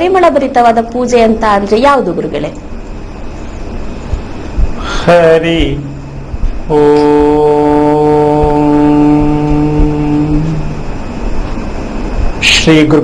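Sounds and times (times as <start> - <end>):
man chanting: 4.8 - 10.9.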